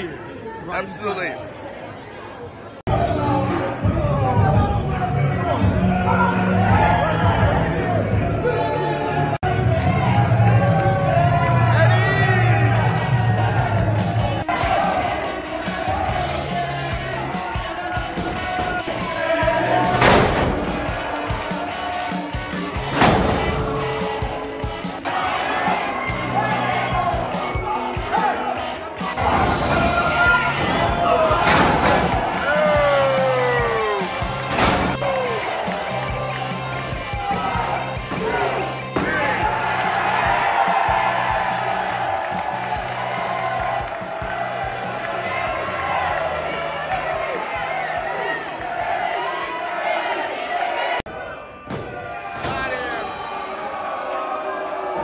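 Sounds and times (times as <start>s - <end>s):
crowd cheering and shouting: 0.0s - 55.0s
background music with bass line: 2.9s - 47.2s.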